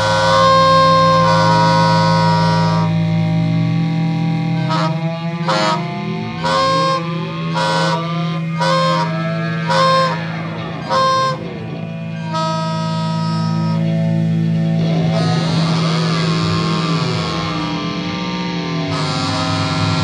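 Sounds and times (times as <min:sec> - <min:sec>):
experimental rock instrumental: 0:00.0 - 0:20.0
low guitar drone: 0:00.0 - 0:20.0
reedy saxophone blasts: 0:00.0 - 0:20.0.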